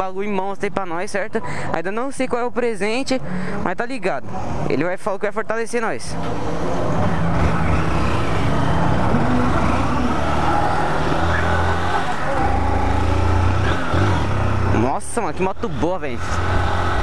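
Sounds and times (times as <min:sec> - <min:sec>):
road noise: 0:00.0 - 0:17.0
motorcycle engine running: 0:06.6 - 0:17.0.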